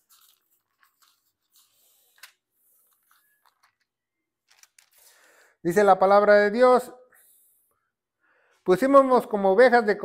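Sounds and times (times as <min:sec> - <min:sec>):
pages rustling: 0:00.0 - 0:03.9, 0:04.5 - 0:05.3.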